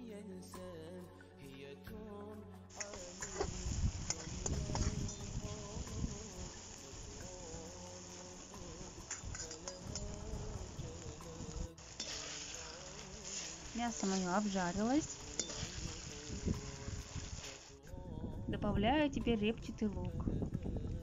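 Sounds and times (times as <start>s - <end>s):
meat sizzling in hot oil: 2.7s - 17.8s
metal spoon scraping pot: 9.0s - 10.2s, 11.8s - 16.0s.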